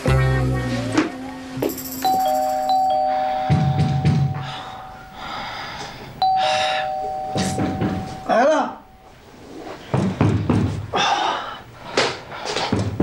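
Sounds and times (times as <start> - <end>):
electronic two-tone doorbell chime: 1.6 - 4.9, 6.2 - 9.1.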